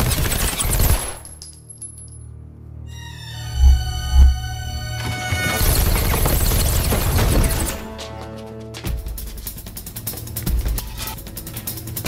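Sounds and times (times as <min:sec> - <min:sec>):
rapid automatic gunfire: 0:00.0 - 0:01.3, 0:05.6 - 0:07.8
low musical hum: 0:01.6 - 0:05.9.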